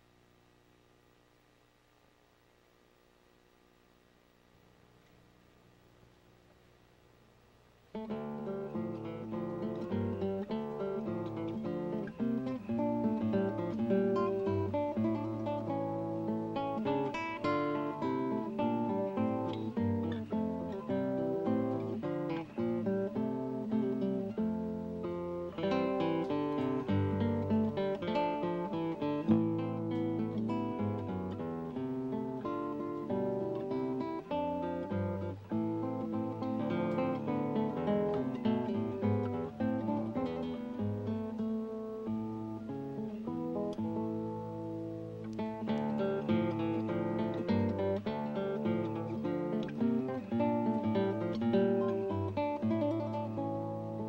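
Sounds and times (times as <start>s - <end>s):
fingerstyle classical guitar: 7.9s - 54.0s.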